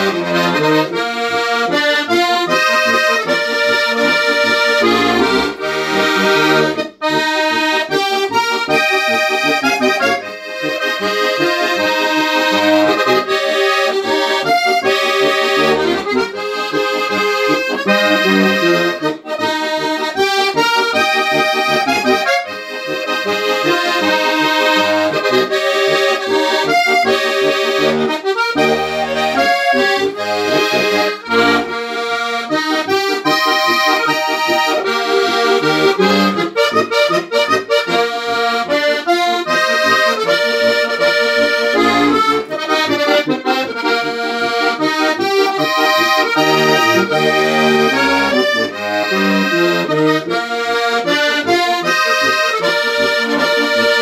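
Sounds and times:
button accordion folk tune: 0.0s - 54.0s.

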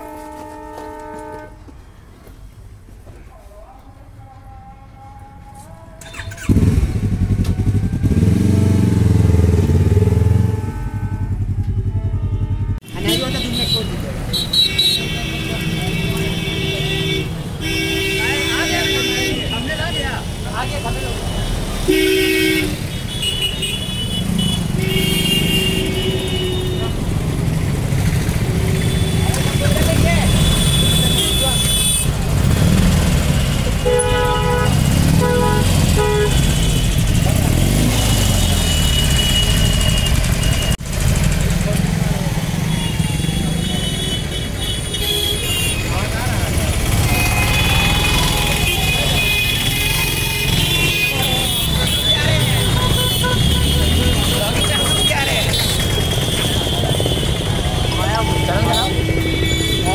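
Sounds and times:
vehicle horns honking: 0.0s - 2.0s, 6.0s - 7.2s, 9.2s - 40.8s, 41.9s - 59.9s
engine and road rumble: 5.0s - 59.9s.

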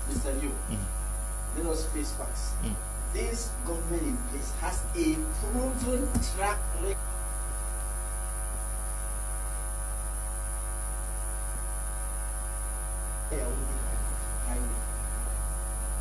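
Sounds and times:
high whine: 0.0s - 7.0s
electrical mains hum: 0.0s - 16.0s
faint muffled voice: 0.1s - 0.9s, 2.6s - 2.8s.

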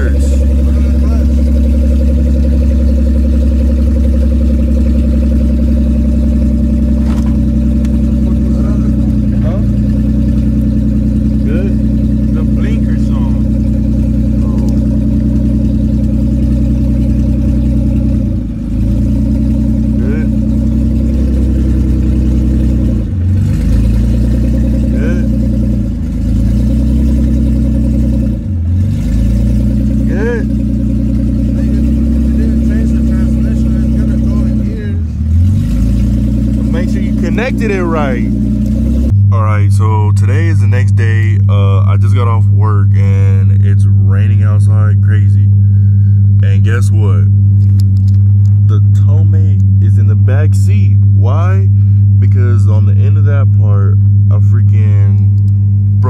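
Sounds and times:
car engine idling: 0.0s - 56.0s.

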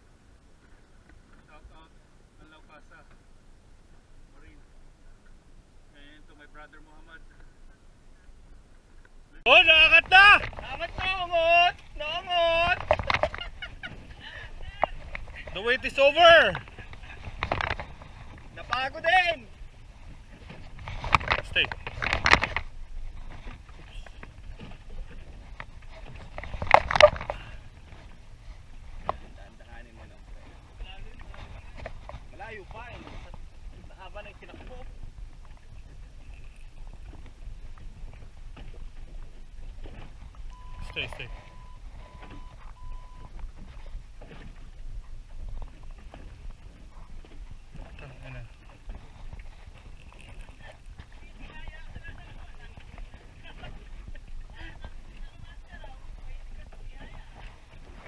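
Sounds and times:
water noise: 0.0s - 58.0s
wind: 0.0s - 58.0s
short electronic beeps: 40.5s - 43.4s.

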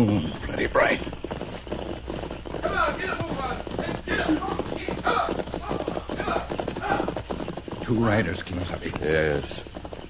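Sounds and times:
horses galloping hoofbeats: 0.0s - 10.0s.

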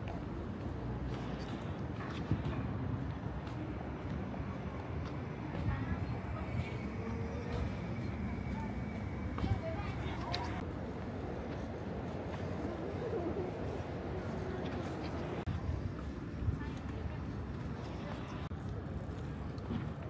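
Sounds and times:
footsteps on pavement: 0.0s - 12.7s, 13.7s - 20.0s
faint voices of passersby: 0.0s - 20.0s
low traffic hum: 0.0s - 20.0s.

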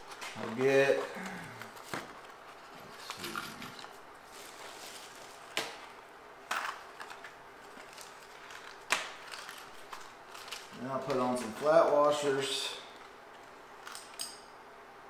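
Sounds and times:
faint rustling of boxes: 0.0s - 6.0s.

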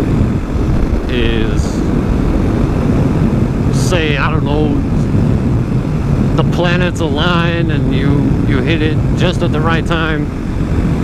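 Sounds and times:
wind noise on microphone: 0.0s - 11.0s
person speaking: 1.1s - 1.9s.

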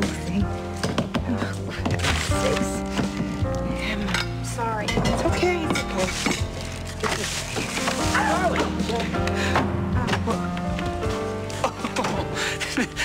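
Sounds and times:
music with sustained chords: 0.0s - 13.0s.

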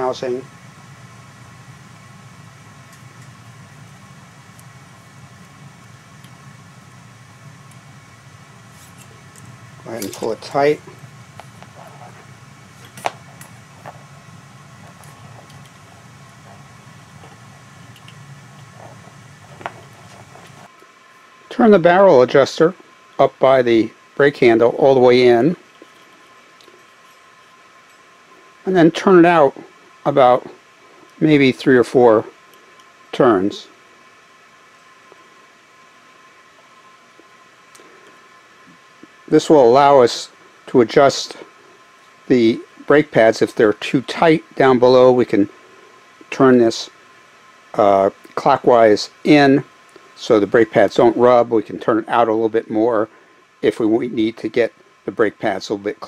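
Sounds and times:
room hiss: 0.0s - 56.0s
steady low hum: 0.0s - 56.0s.

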